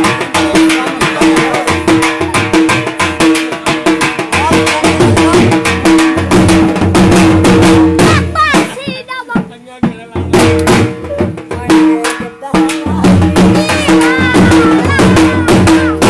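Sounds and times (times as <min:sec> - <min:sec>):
fast drum strokes: 0:00.0 - 0:16.0.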